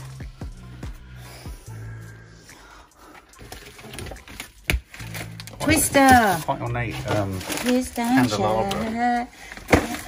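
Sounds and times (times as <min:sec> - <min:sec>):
background music with bass line: 0:00.0 - 0:07.6
boxes and jars clinking: 0:03.4 - 0:10.0.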